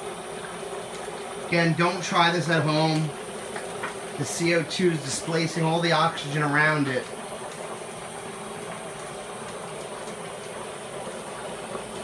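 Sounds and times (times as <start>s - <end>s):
dry ice bubbling in water: 0.0s - 12.0s
tap water running: 0.0s - 12.0s.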